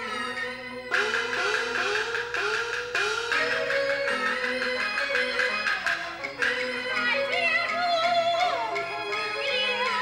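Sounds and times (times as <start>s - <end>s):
plucked string instrument sliding notes: 0.0s - 10.0s.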